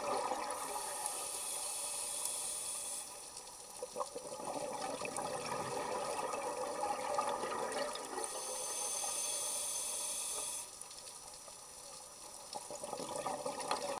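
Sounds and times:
underwater crackling and bubbling: 0:00.0 - 0:14.0
high hiss: 0:00.6 - 0:03.4, 0:08.2 - 0:10.8.

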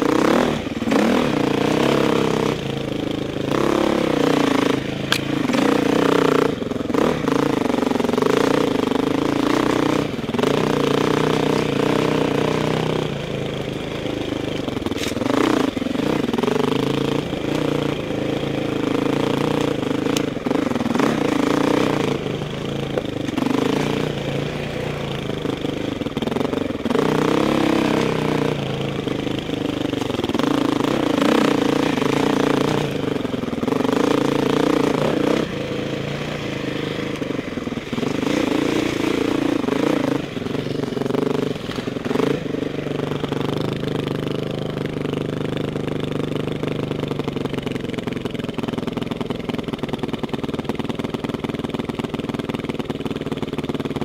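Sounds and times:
dirt bike engine revving: 0:00.0 - 0:47.6.

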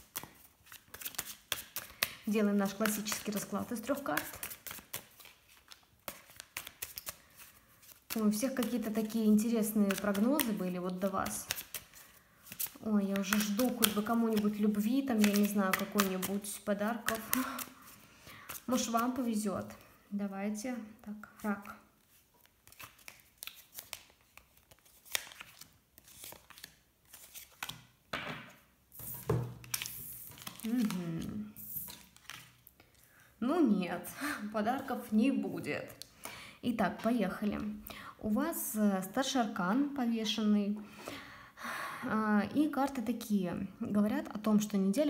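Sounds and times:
cards shuffling by hand: 0:00.0 - 0:19.9, 0:21.3 - 0:33.1.

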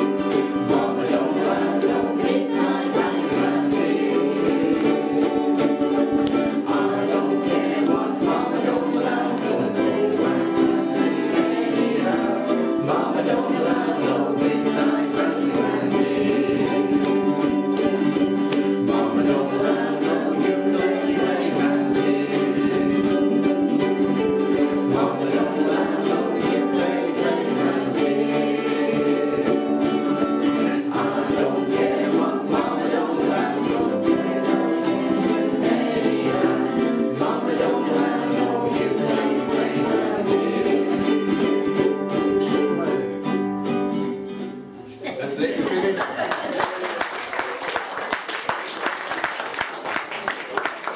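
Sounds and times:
group singing: 0:00.0 - 0:44.6
ukuleles strumming chords: 0:00.0 - 0:50.9
applause: 0:45.6 - 0:50.9.

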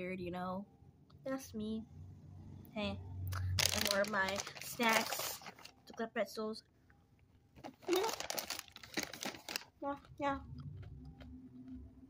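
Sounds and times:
crunchy pretzel being chewed: 0:08.0 - 0:12.0.

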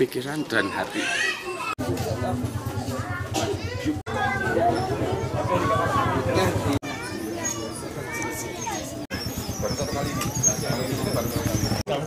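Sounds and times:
background voices with children: 0:00.0 - 0:12.0.

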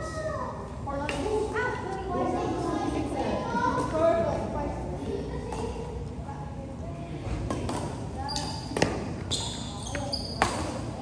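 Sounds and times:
shoes squeaking on court floor: 0:08.2 - 0:11.0.

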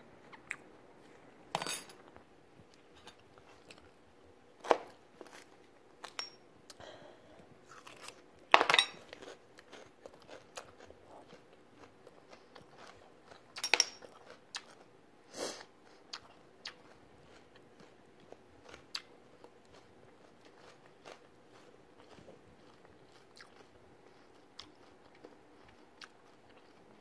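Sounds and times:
food crunching: 0:07.6 - 0:15.0, 0:15.8 - 0:27.0.

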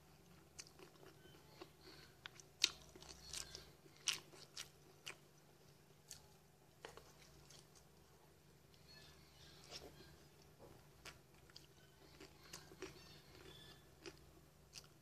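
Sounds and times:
chewing crunchy cereal: 0:00.3 - 0:07.9, 0:11.0 - 0:15.0.

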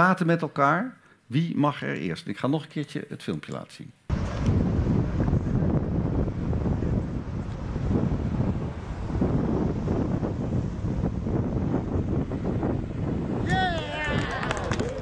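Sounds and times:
wind buffeting microphone: 0:04.1 - 0:15.0.

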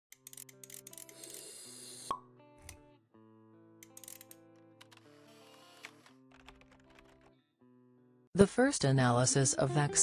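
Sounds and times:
background music: 0:00.1 - 0:10.0.

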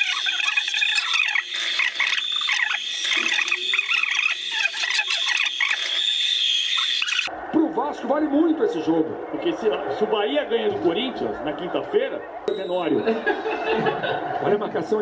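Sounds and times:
crickets chirring: 0:00.0 - 0:07.3
frog calls: 0:00.0 - 0:07.3.

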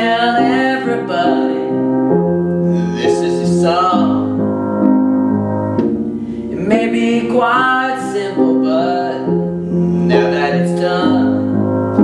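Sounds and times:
young man singing a ballad: 0:00.0 - 0:04.6, 0:06.3 - 0:12.0
piano playing slow chords: 0:00.0 - 0:12.0.

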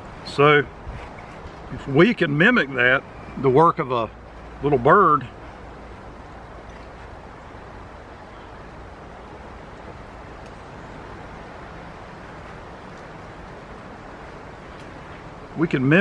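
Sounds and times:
wind noise: 0:00.0 - 0:02.3.

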